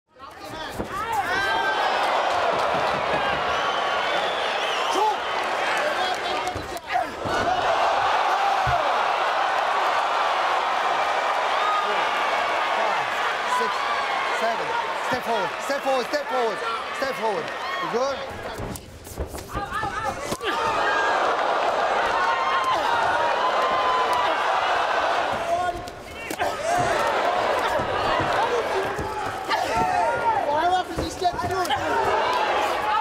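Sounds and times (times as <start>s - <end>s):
crowd yelling and cheering: 0.2s - 18.7s, 19.5s - 33.0s.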